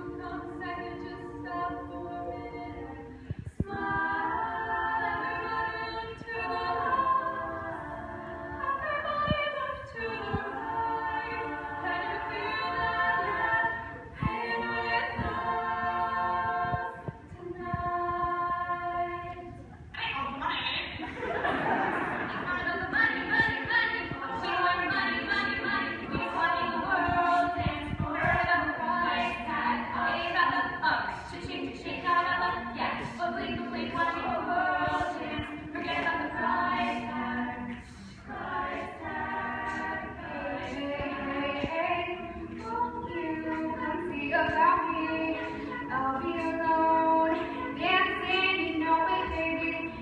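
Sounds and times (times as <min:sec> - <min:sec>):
female choir singing a cappella: 0:00.0 - 0:50.0.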